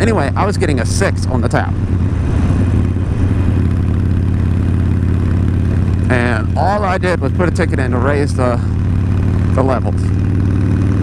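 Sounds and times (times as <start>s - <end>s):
motorcycle engine cruising: 0.0s - 11.0s
wind and road noise: 0.0s - 11.0s.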